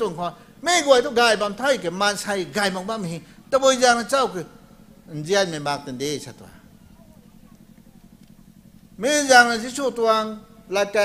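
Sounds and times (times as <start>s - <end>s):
faint low steady hum: 0.0s - 11.0s.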